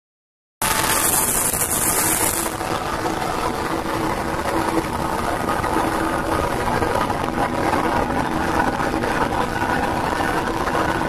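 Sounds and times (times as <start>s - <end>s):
high hiss: 0.6s - 2.9s
gas burner rushing: 0.6s - 11.0s.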